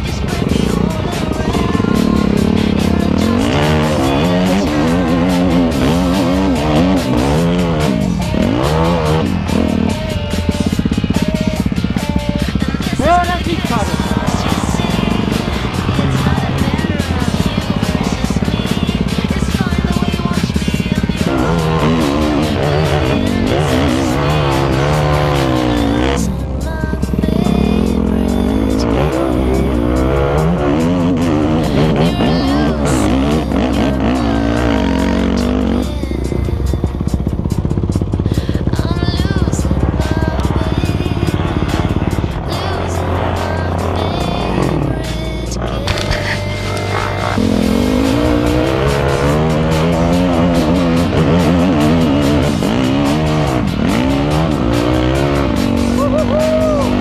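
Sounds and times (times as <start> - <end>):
dirt bike engine revving: 0.0 - 57.0
music: 0.0 - 57.0.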